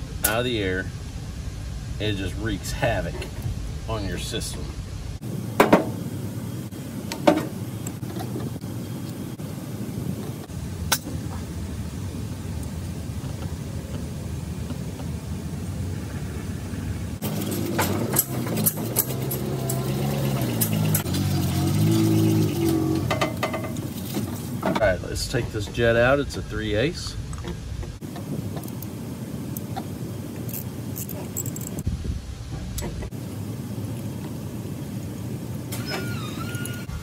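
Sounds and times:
engine-like drone: 0.0 - 31.8
metal parts clicking: 30.5 - 31.8.

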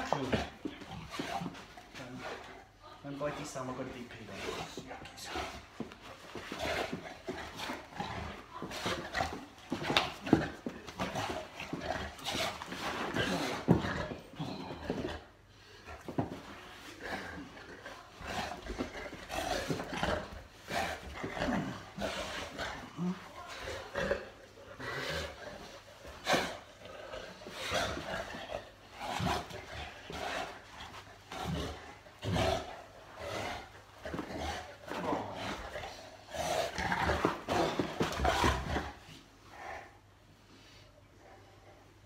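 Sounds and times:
dog play-growling: 0.0 - 40.1.

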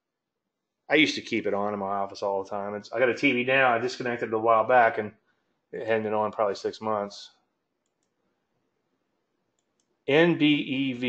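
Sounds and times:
very faint clicks: 7.8 - 8.3, 9.5 - 10.0.

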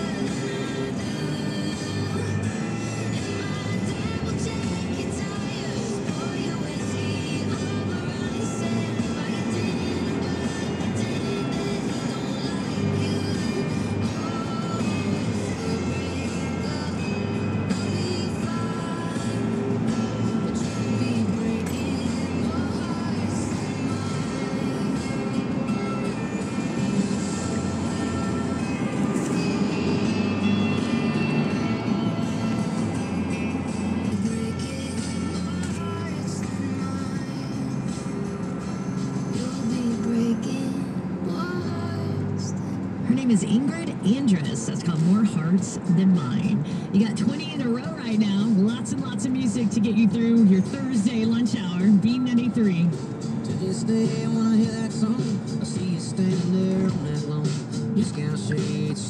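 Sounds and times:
car road and engine noise: 0.0 - 59.0
music on car radio: 0.0 - 59.0.

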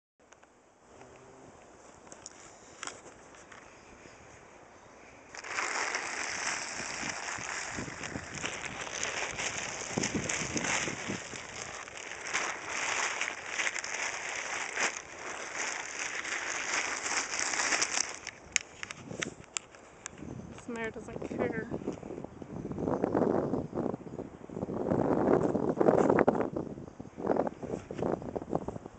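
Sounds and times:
plastic tarp rustling and crackling: 5.3 - 19.2.

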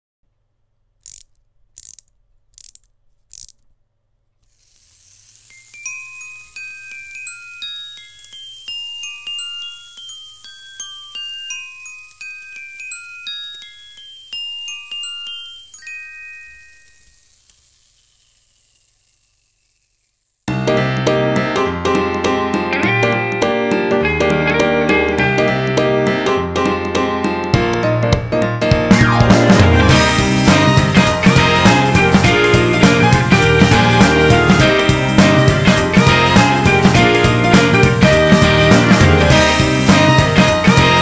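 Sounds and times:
wind-up mechanism ratcheting clicks: 1.0 - 3.7, 4.4 - 20.5
bell-like notes: 5.5 - 17.2.

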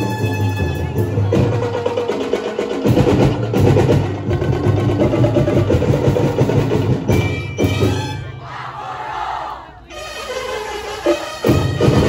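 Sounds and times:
percussion dance music: 10.1 - 12.0.

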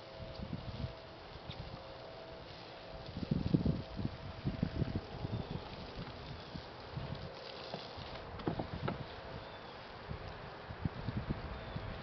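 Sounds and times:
wooden boat thumping and rumbling: 8.3 - 9.1
light knocks on wood: 8.4 - 9.0.

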